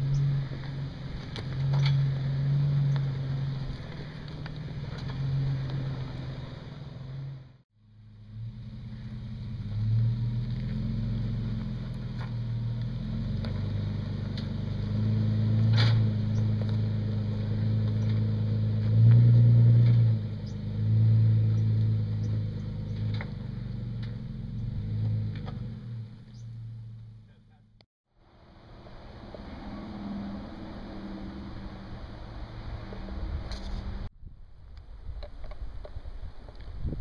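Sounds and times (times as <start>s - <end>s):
engine pulling in low gear: 0.0s - 37.0s.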